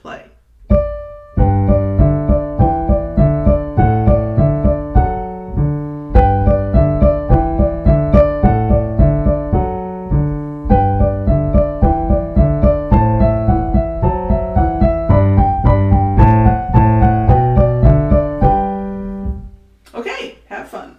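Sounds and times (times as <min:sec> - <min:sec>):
piano playing: 0:00.6 - 0:19.8.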